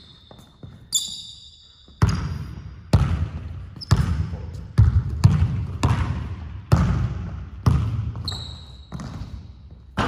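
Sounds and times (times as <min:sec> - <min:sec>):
sneaker squeak: 0:00.0 - 0:02.7, 0:03.6 - 0:04.8, 0:08.1 - 0:09.8
basketball bouncing on wooden floor: 0:02.0 - 0:10.0.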